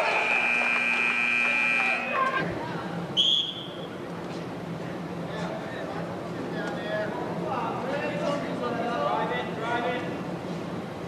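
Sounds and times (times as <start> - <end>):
scoreboard buzzer tone: 0.0 - 2.2
crowd voices: 0.0 - 10.8.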